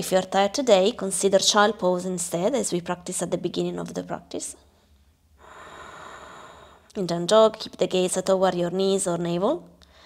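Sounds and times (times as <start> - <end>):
person breathing: 5.4 - 6.9.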